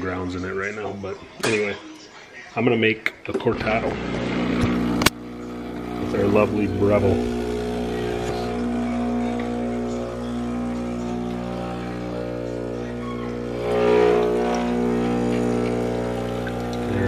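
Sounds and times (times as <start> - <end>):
espresso machine pump humming: 3.7 - 17.0.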